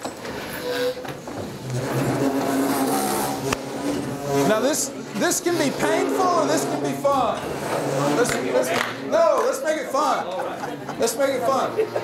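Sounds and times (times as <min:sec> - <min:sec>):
murmur of overlapping voices: 0:00.3 - 0:12.0.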